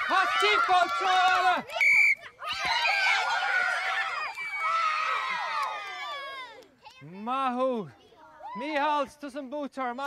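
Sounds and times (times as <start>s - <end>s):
children screaming and shouting: 0.0s - 7.1s, 8.0s - 9.1s.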